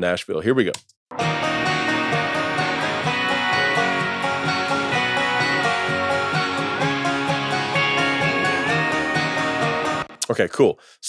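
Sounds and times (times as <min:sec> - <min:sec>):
strummed guitars: 0:01.1 - 0:10.2
held high guitar note: 0:01.2 - 0:10.2.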